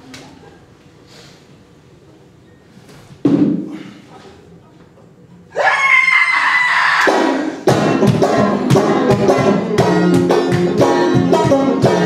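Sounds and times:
loud high-pitched cry: 5.5 - 7.2
banjo music with percussion: 7.6 - 12.0.

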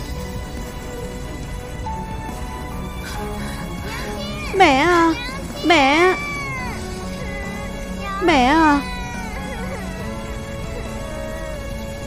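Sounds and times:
background music: 0.0 - 12.0
child wailing: 3.1 - 12.0.

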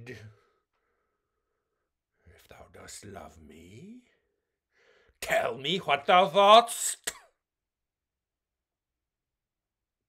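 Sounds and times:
man speaking: 0.0 - 0.4, 2.4 - 4.2, 5.2 - 7.2.

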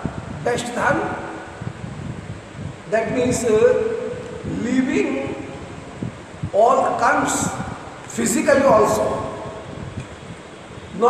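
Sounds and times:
man talking: 0.4 - 1.2, 2.9 - 5.6, 6.5 - 9.4.

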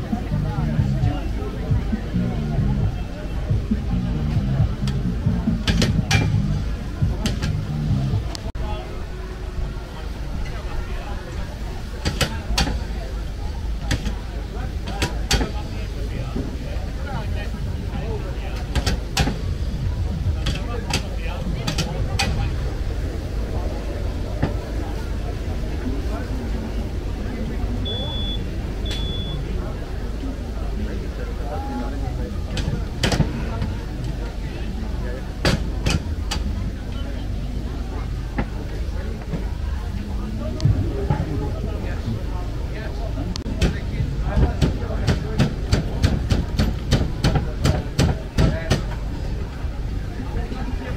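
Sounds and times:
background chatter: 0.0 - 50.9
low outdoor rumble: 0.0 - 50.9.

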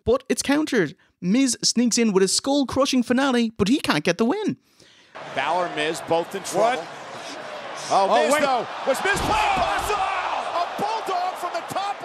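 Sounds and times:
stadium crowd noise: 5.1 - 12.0
man commentating excitedly: 7.6 - 12.0.

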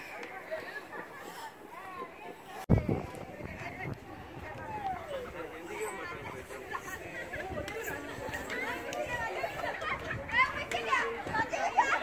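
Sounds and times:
children's voices: 0.0 - 12.0
people talking at once: 0.0 - 12.0.

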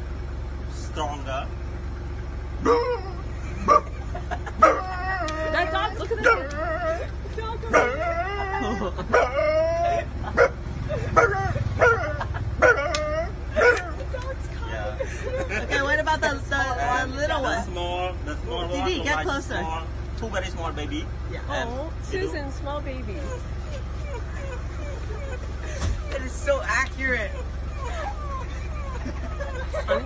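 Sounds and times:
man imitating dog howls: 2.6 - 3.3, 4.6 - 7.1, 7.8 - 10.1
man imitating dog barks: 2.6 - 3.9.

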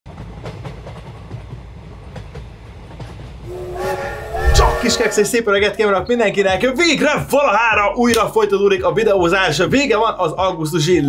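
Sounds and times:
train whistle: 3.5 - 5.4.

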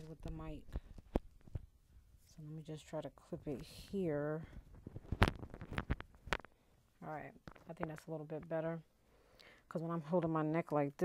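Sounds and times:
knocks and rubs on microphone: 0.0 - 2.4, 3.4 - 6.5, 7.1 - 8.6.

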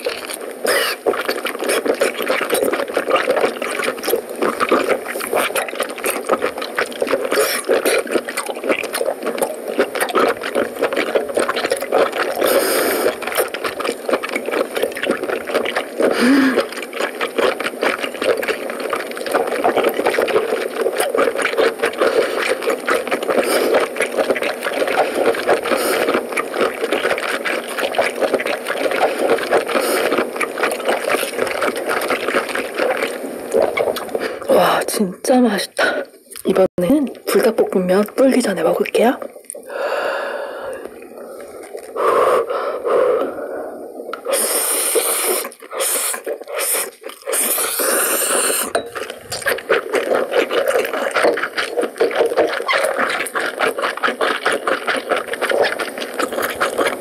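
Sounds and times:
wet chewing mouth sounds: 0.0 - 57.0.

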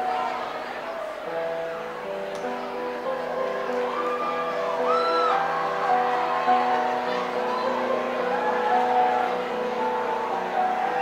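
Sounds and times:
electronic keyboard sustained notes: 0.0 - 11.0.

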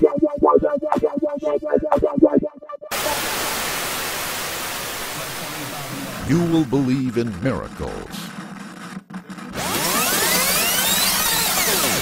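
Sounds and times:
electronic dance track: 0.0 - 3.0, 6.2 - 8.3
white noise hiss: 3.0 - 6.5.

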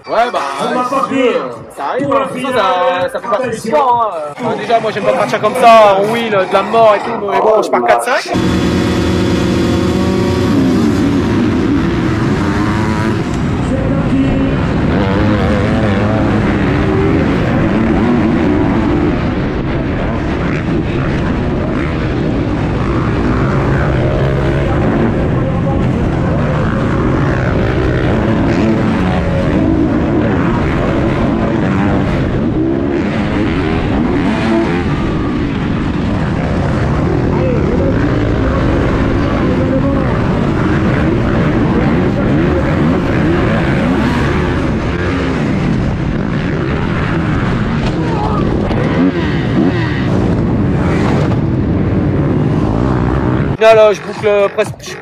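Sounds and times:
motocross engines revving: 0.0 - 55.0.

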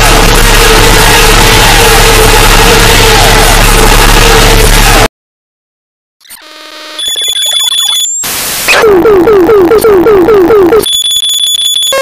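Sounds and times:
harsh electronic music: 0.0 - 5.1, 8.7 - 10.9
high steady beep: 7.0 - 8.2, 9.3 - 12.0.

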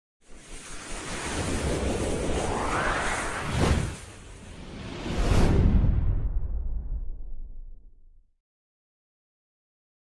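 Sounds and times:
rushing whoosh: 0.3 - 7.5
low rumble: 1.8 - 8.3.

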